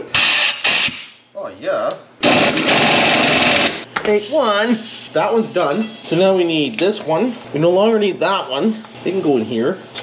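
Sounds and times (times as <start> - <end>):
pneumatic impact wrench hammering: 0.1 - 1.2, 2.2 - 3.9.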